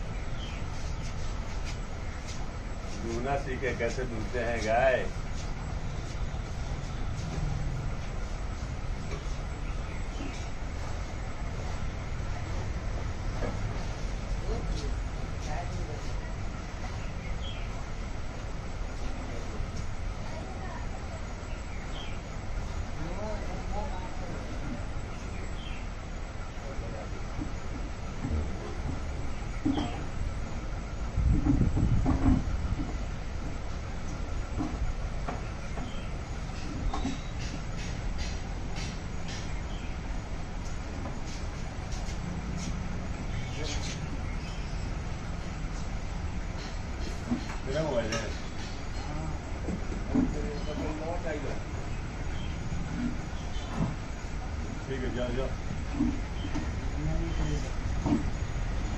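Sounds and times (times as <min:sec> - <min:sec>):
low background noise: 0:00.0 - 0:58.9.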